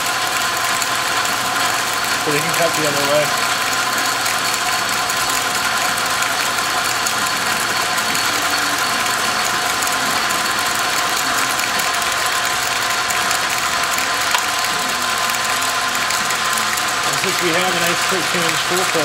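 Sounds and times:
metal lathe whirring: 0.0s - 19.0s.

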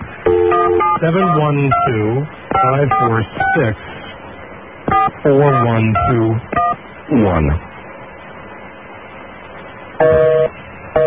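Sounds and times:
telephone line hiss: 0.0s - 11.0s
two-tone busy signal: 0.3s - 2.0s, 2.6s - 3.7s, 4.9s - 6.8s, 10.0s - 11.0s.

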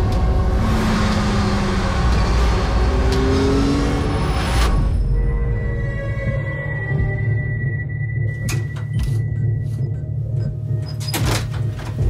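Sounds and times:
road noise of fast vehicles: 0.0s - 5.9s
vehicle engine accelerating: 0.0s - 5.9s.

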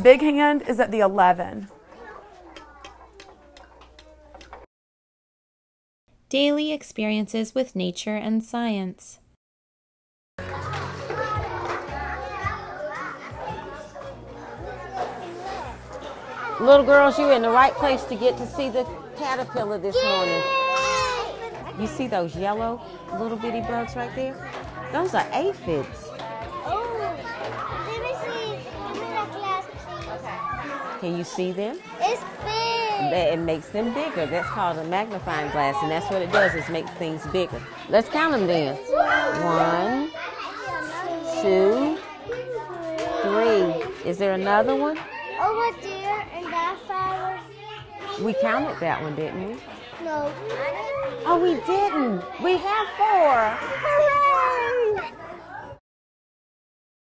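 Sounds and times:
children's voices chattering: 1.7s - 4.7s, 10.4s - 55.8s.

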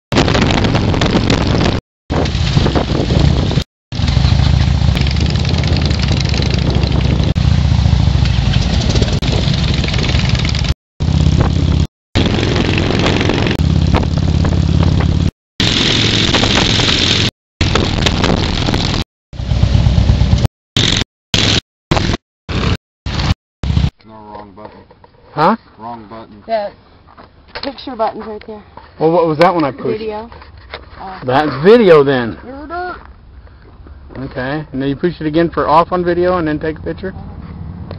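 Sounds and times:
wind rushing over microphone: 0.1s - 19.0s
motorcycle engine running: 0.2s - 23.9s.

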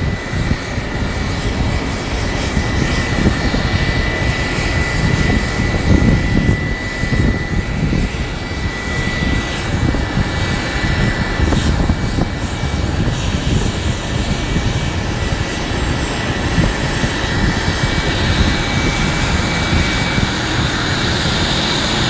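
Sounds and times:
jet engine whine: 0.0s - 22.0s.

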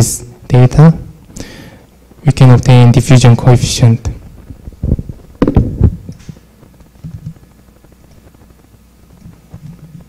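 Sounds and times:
low background hum: 0.0s - 10.0s
microphone handling thumps: 4.2s - 7.5s.

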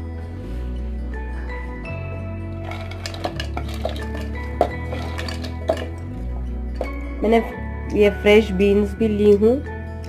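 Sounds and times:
background music with bass: 0.0s - 10.0s
vegetables knocking into metal pot: 2.6s - 6.2s.

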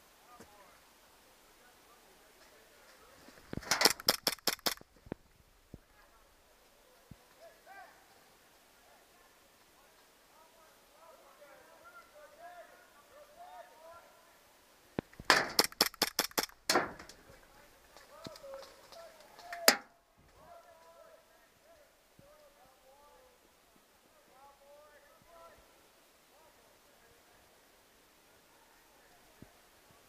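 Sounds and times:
faint distant voices: 0.0s - 3.7s, 5.6s - 15.0s, 16.9s - 30.0s
airsoft pistol shots: 3.6s - 4.8s, 15.3s - 17.0s.

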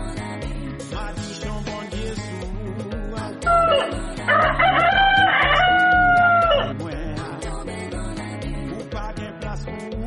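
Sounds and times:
music with steady beat: 0.0s - 10.0s
rooster crowing: 3.4s - 6.7s.

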